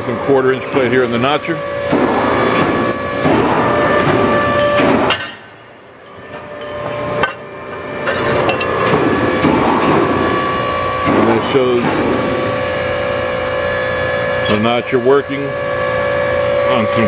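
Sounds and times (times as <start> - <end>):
machine hum with constant tone: 0.0 - 17.0.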